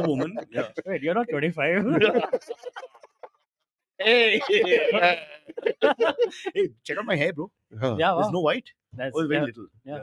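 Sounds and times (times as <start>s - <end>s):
man speaking: 0.0s - 2.5s, 4.0s - 10.0s
men laughing: 0.0s - 3.5s, 4.1s - 6.8s
man shouting: 4.0s - 5.2s.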